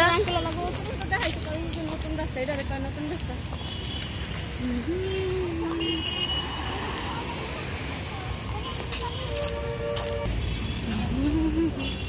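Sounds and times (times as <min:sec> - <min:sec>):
motor vehicle rumbling: 0:00.0 - 0:12.0.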